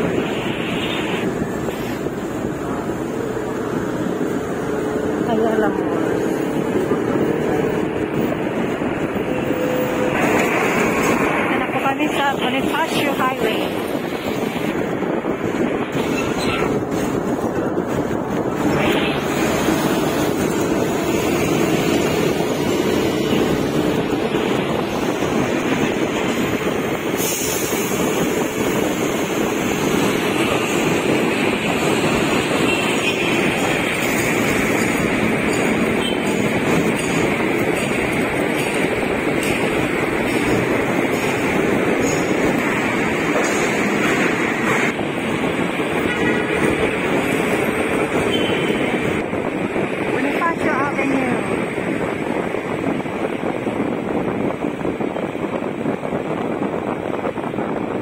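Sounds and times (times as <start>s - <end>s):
city traffic noise: 0.0s - 58.0s
engines and tyres running: 0.0s - 58.0s.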